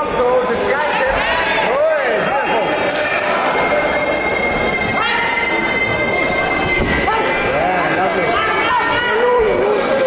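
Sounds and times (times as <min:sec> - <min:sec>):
spectators shouting: 0:00.7 - 0:10.0.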